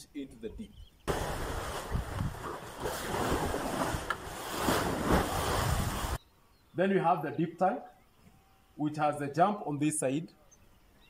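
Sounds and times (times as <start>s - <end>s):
wind buffeting microphone: 1.1s - 6.2s.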